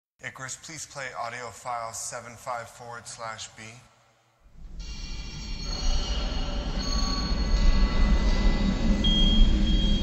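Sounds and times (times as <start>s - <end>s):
deep low rumble: 4.5s - 10.0s
high metallic squealing tones: 4.6s - 10.0s.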